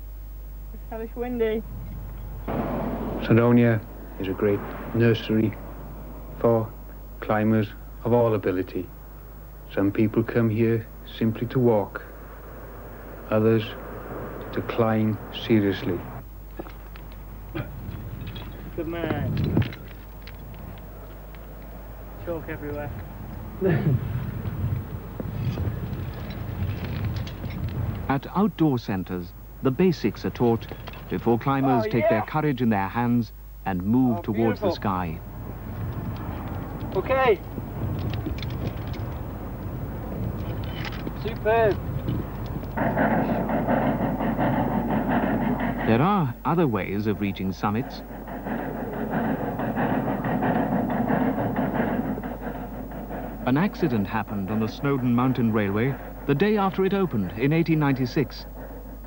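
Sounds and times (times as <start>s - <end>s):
mechanical rumble: 0.0s - 59.0s
steam locomotive chuffing: 0.8s - 59.0s
wind buffeting microphone: 0.9s - 33.2s, 33.8s - 59.0s.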